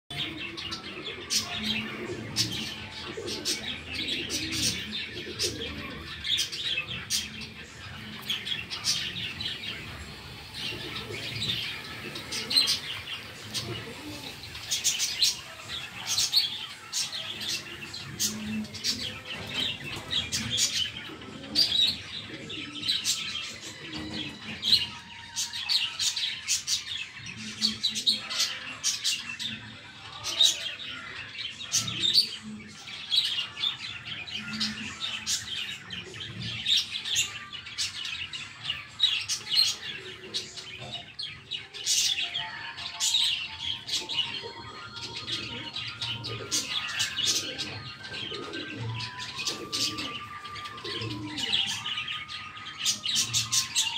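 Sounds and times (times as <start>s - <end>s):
small birds chirping: 0.1s - 53.9s.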